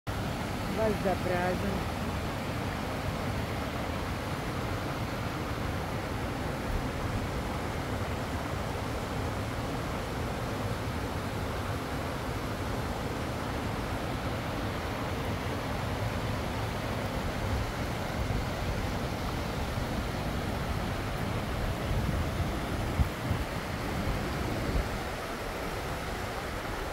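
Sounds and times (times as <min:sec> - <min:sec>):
rushing water: 0:00.1 - 0:26.9.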